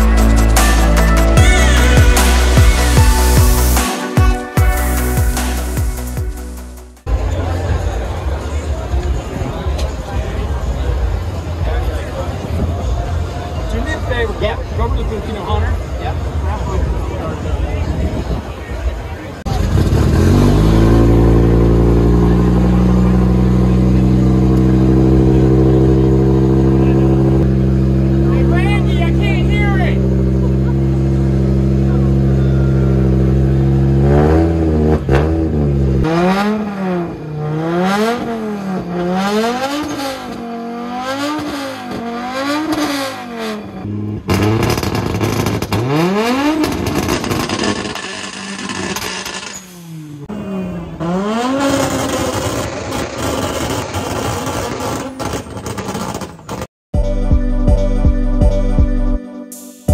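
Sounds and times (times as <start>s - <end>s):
car engine starting and idling: 18.6s - 56.7s
engine revving: 19.5s - 56.7s.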